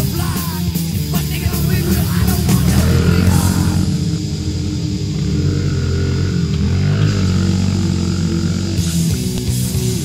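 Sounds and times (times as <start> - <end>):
small motorbike engine running: 1.1 - 10.0.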